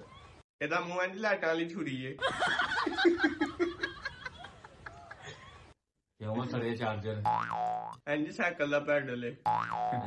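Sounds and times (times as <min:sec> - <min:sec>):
cartoon boing: 0:07.2 - 0:08.0, 0:09.4 - 0:10.0.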